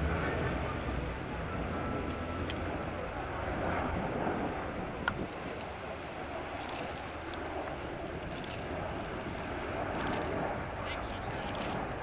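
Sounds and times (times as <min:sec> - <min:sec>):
low hum: 0:00.0 - 0:10.3
turboprop engines droning: 0:00.0 - 0:12.0.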